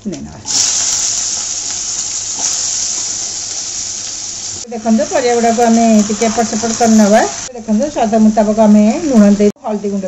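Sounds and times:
potatoes sizzling in hot oil: 0:00.5 - 0:09.4.

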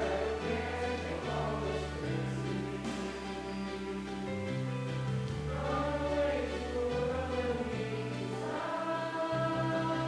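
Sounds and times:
choir singing sustained chords: 0:00.0 - 0:10.0.

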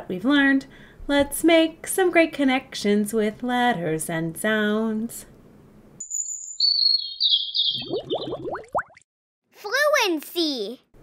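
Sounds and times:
high warbling whistle: 0:06.0 - 0:08.5.

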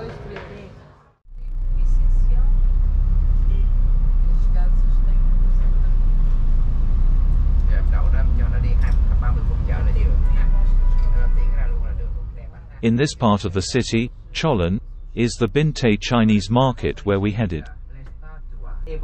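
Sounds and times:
vehicle engine and road rumble: 0:01.3 - 0:19.0.

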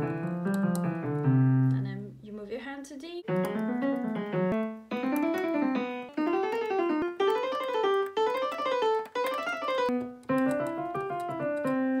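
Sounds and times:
digital piano playing scales: 0:00.0 - 0:01.8, 0:03.2 - 0:12.0.

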